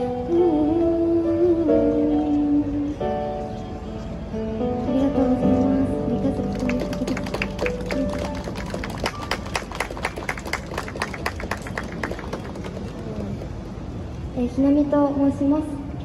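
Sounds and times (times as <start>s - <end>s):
audience clapping: 6.4s - 13.5s.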